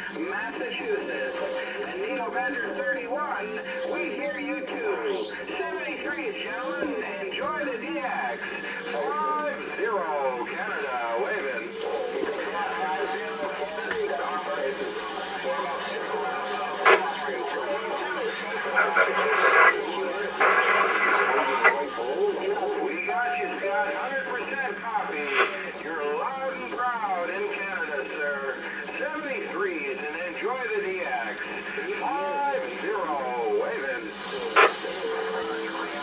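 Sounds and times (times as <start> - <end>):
distant voices over radio: 0.0 - 36.0
radio static bursts: 0.0 - 36.0
steady low hum: 0.0 - 36.0.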